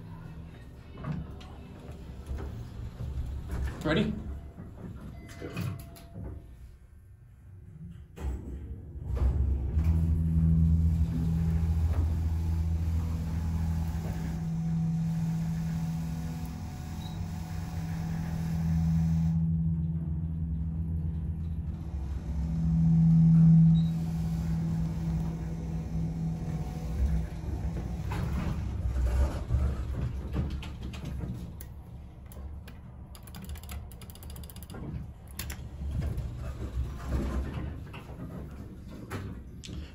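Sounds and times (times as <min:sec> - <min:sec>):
hydraulic pump motor humming: 0:09.6 - 0:29.7
elevator clicks: 0:30.6 - 0:35.8.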